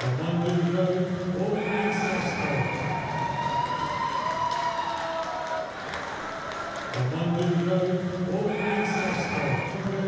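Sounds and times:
ice rink background noise: 0.0s - 10.0s.

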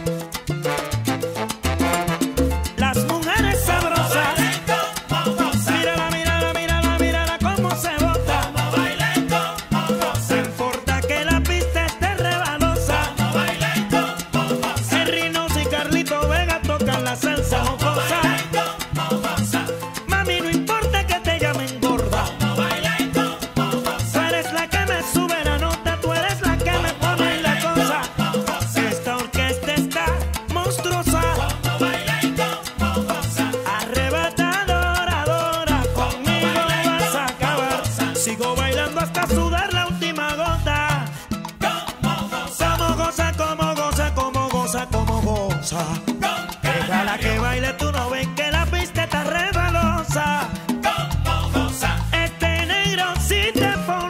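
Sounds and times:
latin band salsa music: 0.0s - 54.0s.

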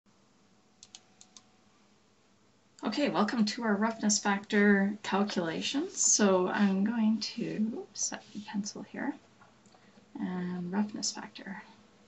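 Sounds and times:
low room hiss: 0.1s - 12.0s
computer keys clicking: 0.8s - 1.5s.

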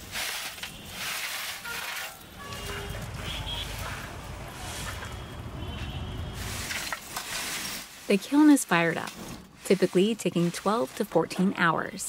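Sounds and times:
kiln crackling and hissing: 0.0s - 12.0s.

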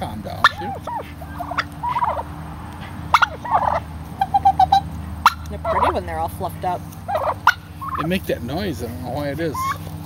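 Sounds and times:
turkeys gobbling: 0.2s - 8.3s, 9.2s - 9.9s.

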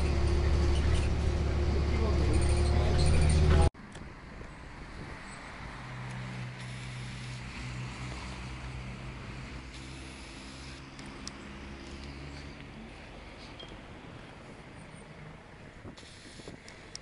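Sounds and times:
vehicle engine humming: 0.0s - 17.0s.

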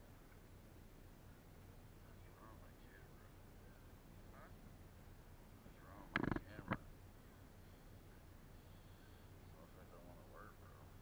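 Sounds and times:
faint distant calls: 0.9s - 11.0s.

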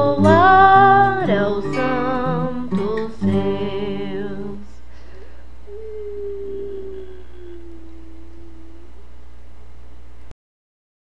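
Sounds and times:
steady low hum: 0.0s - 10.3s
faint pure tone: 1.6s - 9.5s.

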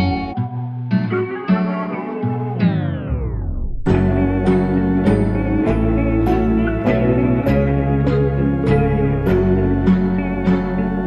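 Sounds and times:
plucked guitar western music: 0.0s - 11.0s.

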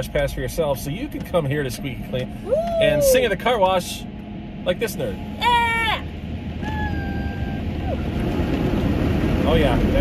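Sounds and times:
car wash water spray and machinery: 0.0s - 10.0s.

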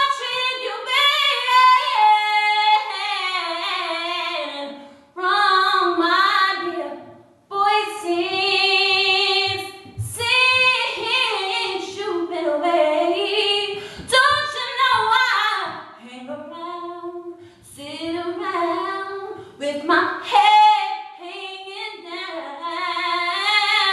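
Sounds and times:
woman singing unaccompanied: 0.0s - 23.9s.

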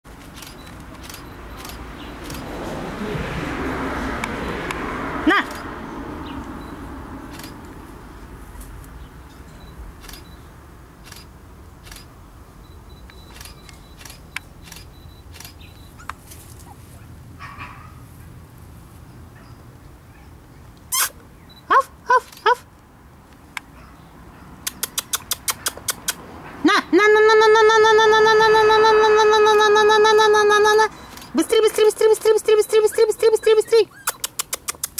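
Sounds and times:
rushing background noise: 0.1s - 19.0s
puppy yelping: 24.7s - 26.2s, 32.8s - 34.9s.

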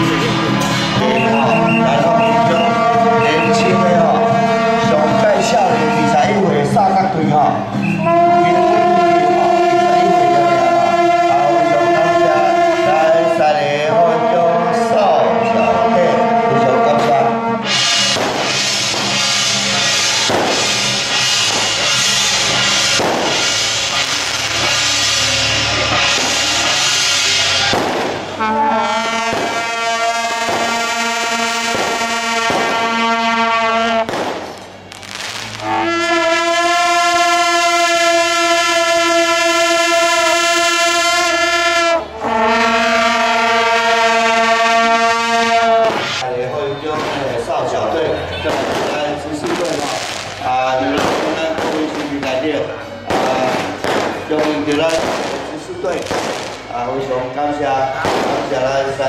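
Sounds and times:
brass band playing: 0.0s - 46.3s, 47.8s - 58.7s.

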